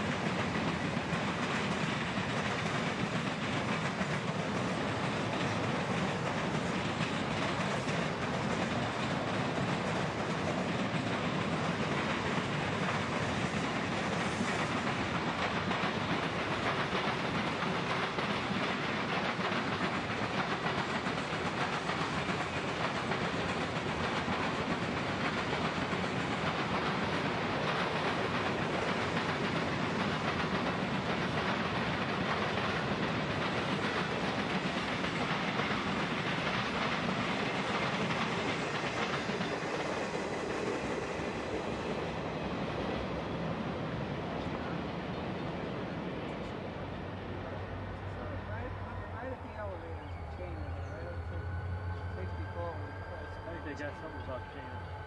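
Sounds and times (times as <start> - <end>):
freight train rolling past: 0.0 - 55.0
steel wheels on rails: 0.0 - 55.0.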